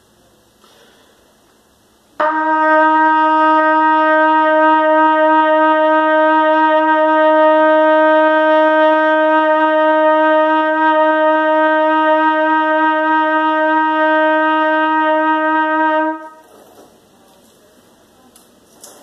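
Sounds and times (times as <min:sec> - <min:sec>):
trumpet holding a long note: 0:02.2 - 0:16.5.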